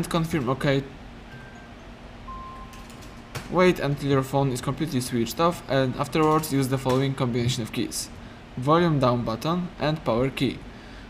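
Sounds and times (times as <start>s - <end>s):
low room hum: 0.0s - 11.0s
short electronic tones: 1.3s - 3.3s.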